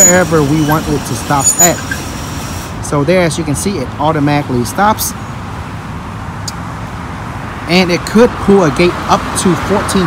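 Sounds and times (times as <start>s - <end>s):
distant road traffic: 0.0s - 10.0s.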